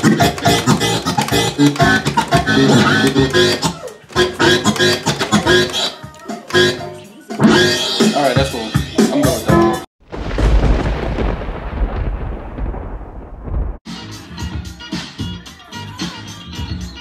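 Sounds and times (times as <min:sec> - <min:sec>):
dance music with beat and bass: 0:00.0 - 0:05.8.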